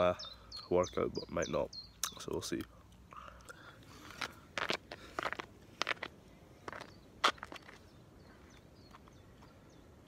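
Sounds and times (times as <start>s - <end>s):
faint outdoor background: 0.0s - 10.0s
footsteps: 4.0s - 7.9s.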